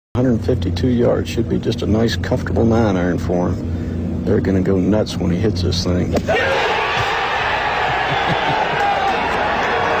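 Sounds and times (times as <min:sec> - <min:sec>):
people shouting and whooping: 0:06.3 - 0:10.0.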